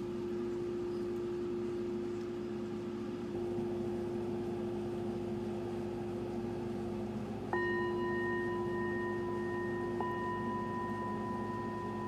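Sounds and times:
singing bowl ringing: 7.5s - 12.0s.

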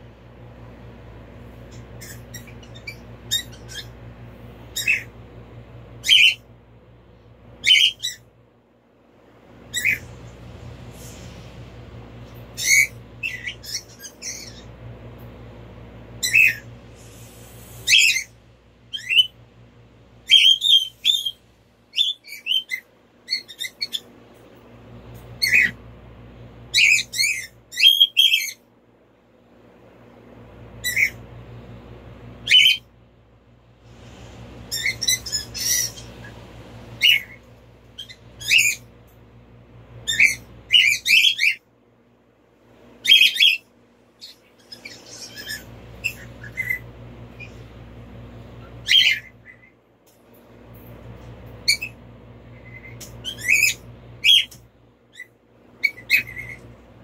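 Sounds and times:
low hum: 0.0s - 27.8s, 28.6s - 57.0s
bird chirping and squawking: 1.7s - 4.0s, 4.7s - 5.1s, 6.0s - 6.4s, 7.6s - 8.2s, 9.7s - 10.2s, 12.5s - 14.8s, 16.2s - 16.7s, 17.8s - 19.4s, 20.2s - 24.1s, 25.4s - 25.8s, 26.7s - 28.6s, 30.8s - 31.2s, 32.4s - 32.9s, 34.7s - 36.4s, 37.0s - 38.9s, 40.0s - 41.6s, 43.0s - 47.6s, 48.6s - 49.8s, 51.6s - 52.0s, 52.6s - 56.7s.

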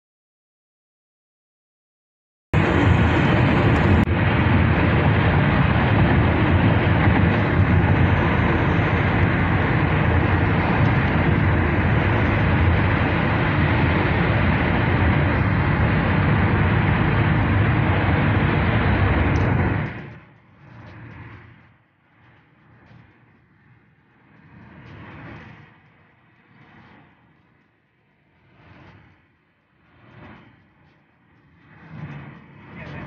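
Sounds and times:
car cabin road noise: 2.6s - 20.1s.

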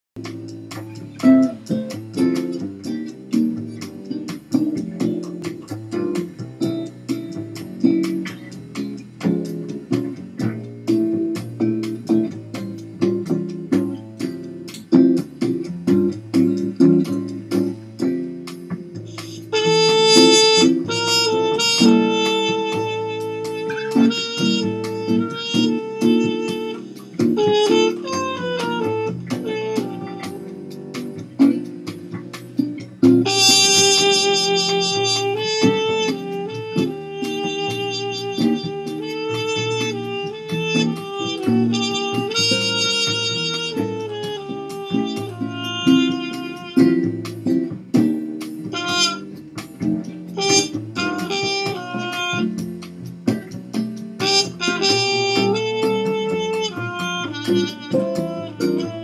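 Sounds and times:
bossa nova guitar: 0.2s - 59.0s
muted cornet melody: 0.2s - 59.0s.

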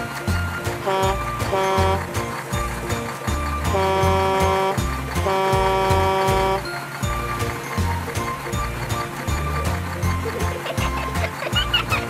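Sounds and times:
background music with steady beat: 0.0s - 12.0s
cartoon truck horn honking: 0.8s - 2.3s, 3.6s - 7.0s.

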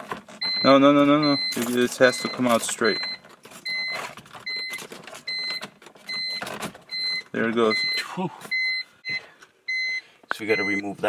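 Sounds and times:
plastic trim creaking and scraping: 0.0s - 7.8s
electronic beep: 0.4s - 10.9s.

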